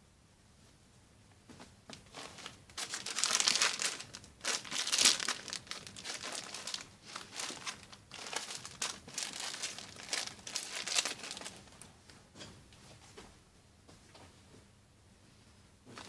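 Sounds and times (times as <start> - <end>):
plastic packaging crinkling: 2.0 - 11.9.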